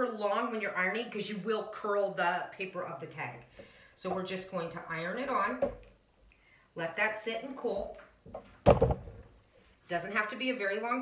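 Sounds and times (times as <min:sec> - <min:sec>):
clothes iron thunk on wood: 0:08.6 - 0:09.2.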